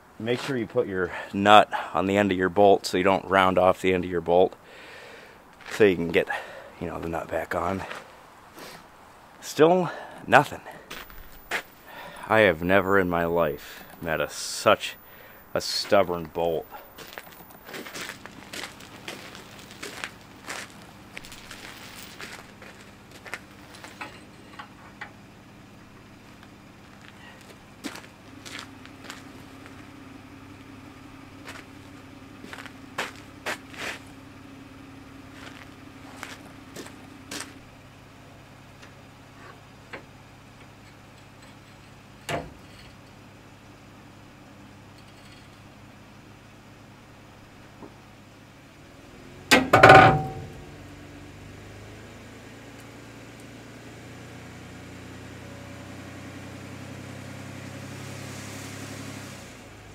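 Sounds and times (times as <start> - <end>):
steady low hum: 0.0 - 55.2.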